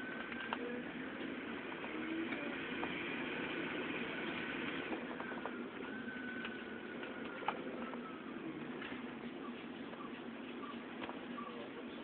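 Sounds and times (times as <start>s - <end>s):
vehicle running noise: 0.0s - 11.2s
faint high whine: 0.0s - 12.0s.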